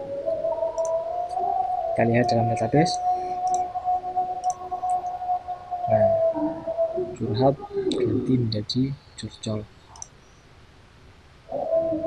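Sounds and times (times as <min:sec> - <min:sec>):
steady hum-like tone: 0:00.0 - 0:12.0
low murmur of voice: 0:05.9 - 0:09.6.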